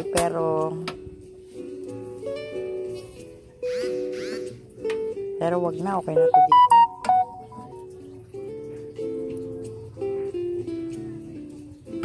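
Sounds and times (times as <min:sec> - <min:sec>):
acoustic guitar chords: 0:06.1 - 0:09.1.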